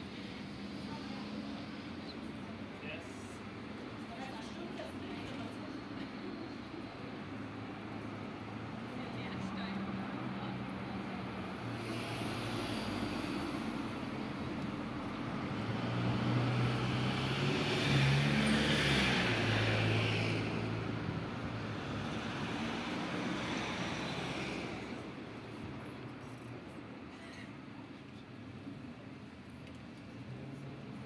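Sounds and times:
motor vehicle passing by: 11.5s - 25.2s.

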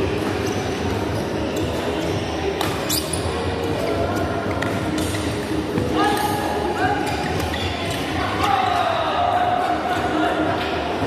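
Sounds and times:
shoes squeaking on court floor: 0.0s - 8.4s
noise from neighbouring courts: 0.0s - 11.0s.

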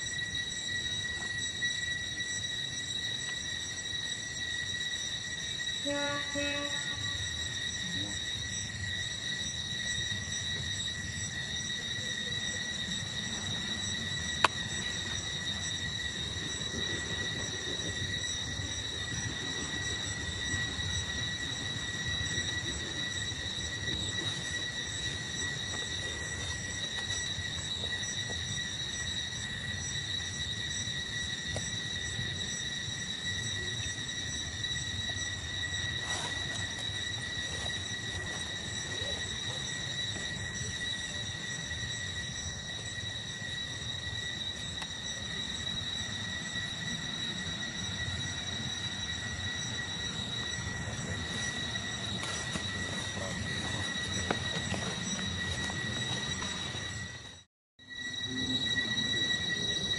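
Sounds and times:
high-pitched insect drone: 0.0s - 59.9s.

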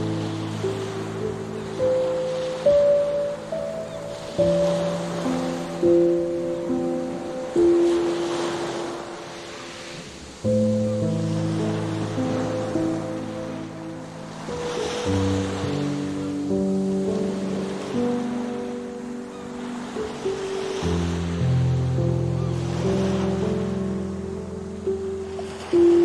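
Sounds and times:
slow calm music of held chords: 0.0s - 9.5s, 10.4s - 26.0s
ocean waves washing onto beach: 0.0s - 26.0s.

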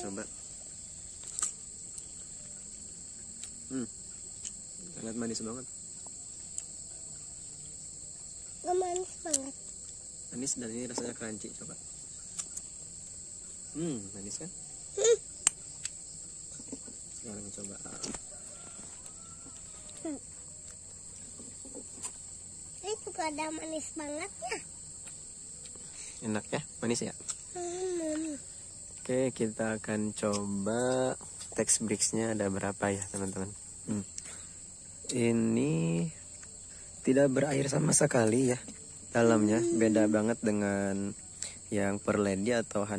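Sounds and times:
insects chorus: 0.0s - 42.9s.

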